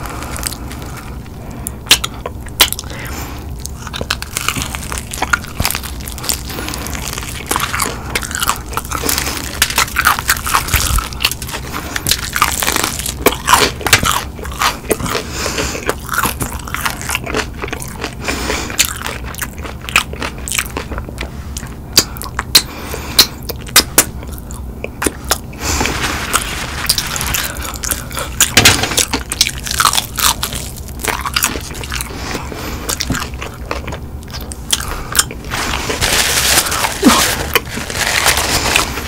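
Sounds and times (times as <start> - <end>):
crunchy chewing of fried chicken: 0.0 - 39.0.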